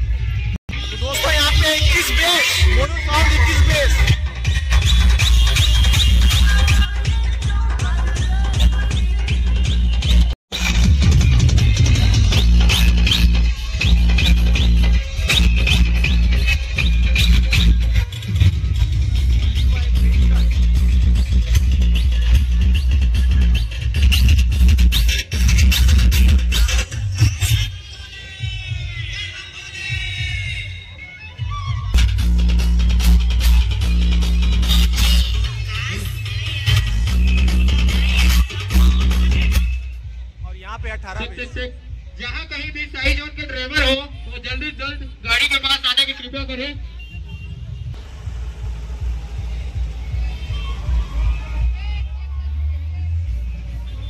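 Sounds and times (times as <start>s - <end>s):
dance music with heavy bass: 0.4s - 29.2s, 32.0s - 46.8s.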